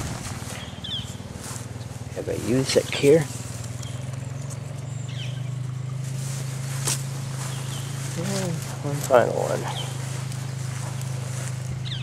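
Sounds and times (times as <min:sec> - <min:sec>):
steady low hum: 0:00.0 - 0:12.0
faint bird chirps: 0:03.7 - 0:06.1, 0:07.4 - 0:08.6, 0:09.7 - 0:12.0.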